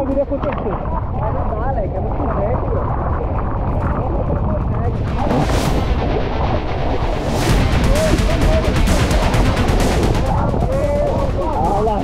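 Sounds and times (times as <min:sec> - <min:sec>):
sea water sloshing and splashing: 0:00.0 - 0:12.0
wind buffeting microphone: 0:00.0 - 0:12.0.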